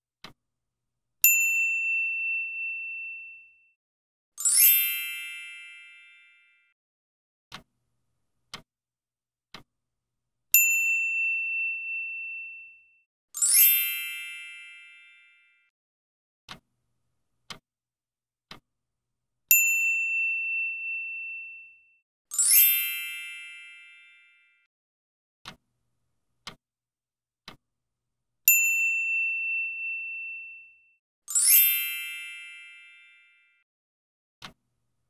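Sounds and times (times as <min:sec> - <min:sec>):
bell ding: 0:01.3 - 0:03.8, 0:10.6 - 0:15.7, 0:19.5 - 0:24.7, 0:28.5 - 0:33.6
clock ticks: 0:07.5 - 0:07.8, 0:08.4 - 0:08.7, 0:09.5 - 0:09.7, 0:16.5 - 0:17.6, 0:18.5 - 0:18.7, 0:25.4 - 0:26.6, 0:27.4 - 0:27.6, 0:34.4 - 0:34.6
shimmering chime: 0:31.3 - 0:33.3.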